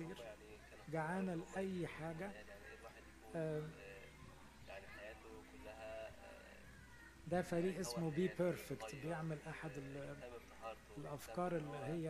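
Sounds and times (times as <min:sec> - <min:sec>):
faint human voices: 0:00.0 - 0:12.0.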